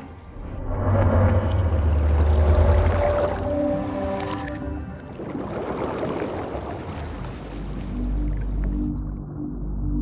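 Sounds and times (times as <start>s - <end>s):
soft sustained notes: 0.0s - 5.3s
deep low rumbling music: 0.0s - 10.0s.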